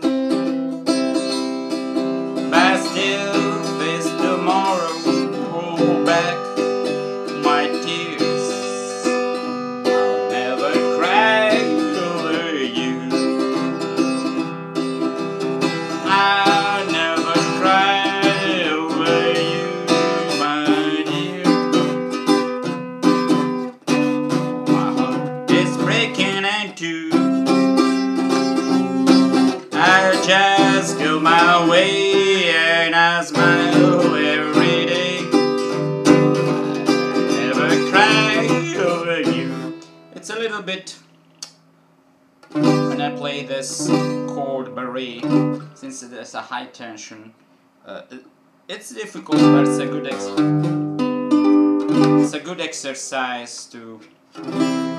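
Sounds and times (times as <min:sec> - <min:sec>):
acoustic guitar strumming: 0:00.0 - 0:41.8, 0:42.4 - 0:46.7, 0:48.8 - 0:53.6, 0:54.3 - 0:54.9.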